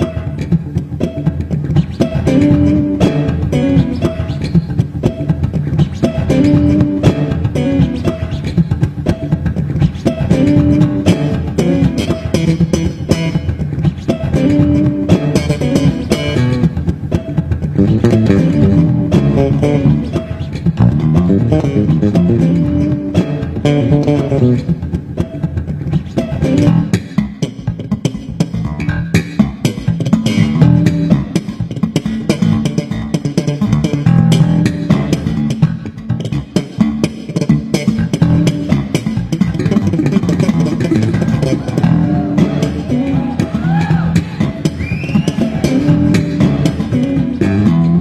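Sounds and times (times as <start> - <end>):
electric bass guitar plucking: 0.0 - 48.0.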